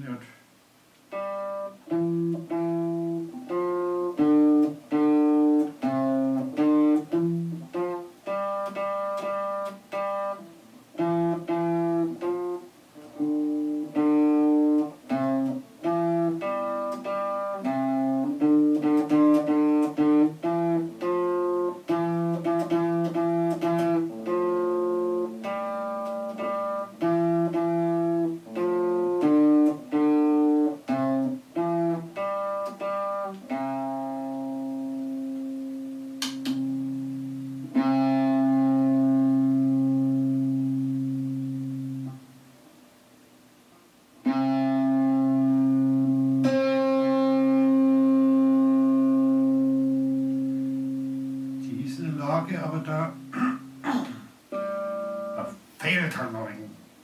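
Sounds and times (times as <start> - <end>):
electric guitar strumming chords: 1.0 - 42.5, 44.2 - 56.7.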